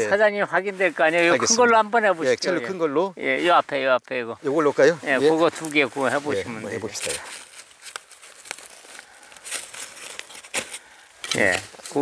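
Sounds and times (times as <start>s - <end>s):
soft rustling: 0.0s - 2.9s, 4.4s - 12.0s
hands scraping dry soil: 4.5s - 12.0s.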